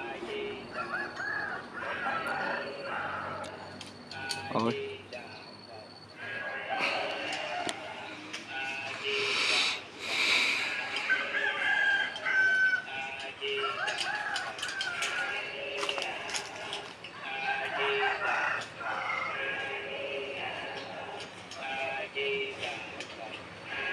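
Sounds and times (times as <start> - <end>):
chickens clucking: 0.0 - 5.4, 6.2 - 23.9
rooster crowing: 0.6 - 3.8, 10.6 - 20.1.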